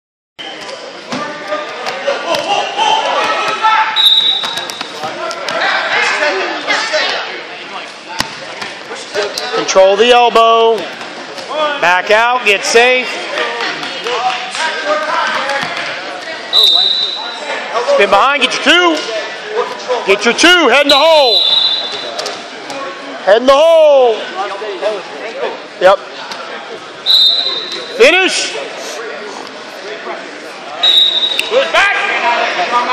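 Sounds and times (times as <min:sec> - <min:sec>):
voices calling out: 0:00.5 - 0:09.8, 0:12.6 - 0:23.2
shoes squeaking on mat: 0:03.2 - 0:05.6, 0:20.8 - 0:22.4
high whistle-like tone: 0:04.0 - 0:04.6, 0:16.5 - 0:17.3, 0:21.3 - 0:22.0, 0:27.1 - 0:27.9, 0:30.8 - 0:31.5
faint background voices: 0:24.1 - 0:32.9.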